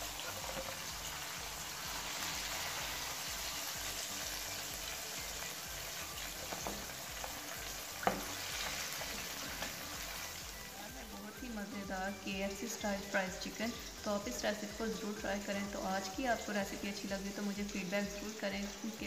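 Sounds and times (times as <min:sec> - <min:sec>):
deep-frying sizzle: 0:00.0 - 0:19.0.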